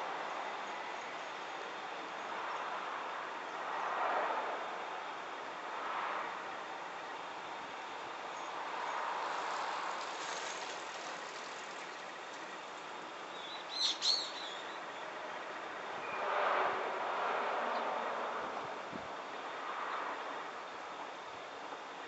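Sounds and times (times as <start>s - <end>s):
outdoor background hiss: 0.0s - 22.0s
small bird chirping: 13.3s - 14.8s.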